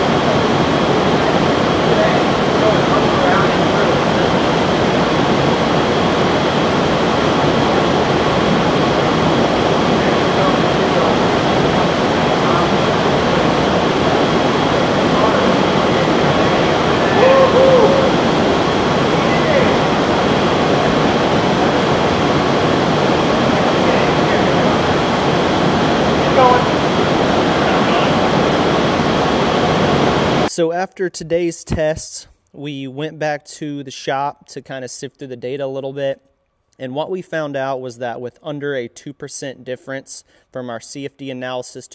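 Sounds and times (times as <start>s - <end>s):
wind tunnel air rush: 0.0s - 30.5s
faint high whine: 0.0s - 30.7s.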